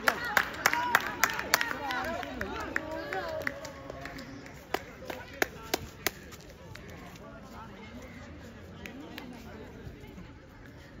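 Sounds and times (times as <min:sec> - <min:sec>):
sharp hand claps: 0:00.0 - 0:06.8.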